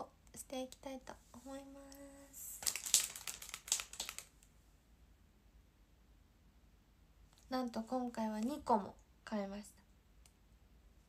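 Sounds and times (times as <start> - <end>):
plastic packets crinkling: 2.4 - 4.5.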